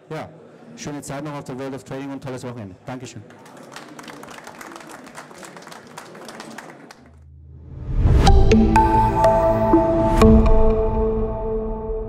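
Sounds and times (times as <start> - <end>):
audience applauding: 3.2 - 7.2
low hum: 7.2 - 12.0
music: 7.8 - 12.0.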